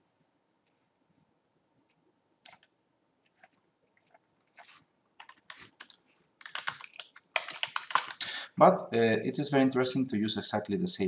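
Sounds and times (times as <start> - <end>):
computer keyboard typing: 2.4 - 2.7, 3.4 - 8.2.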